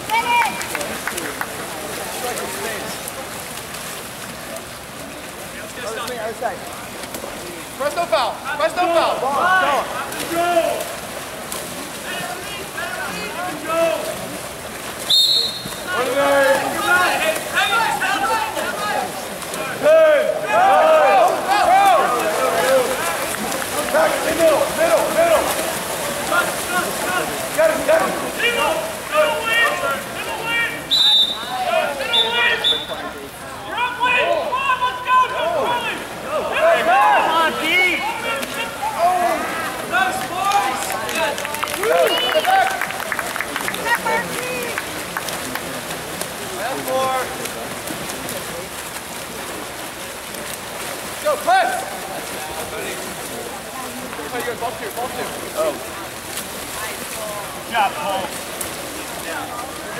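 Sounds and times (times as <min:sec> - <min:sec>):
players splashing in pool: 0:00.0 - 0:59.9
referee's whistle blasts: 0:15.1 - 0:15.9, 0:30.9 - 0:31.5, 0:32.1 - 0:33.0
spectators shouting: 0:15.2 - 0:32.8, 0:33.6 - 0:42.9.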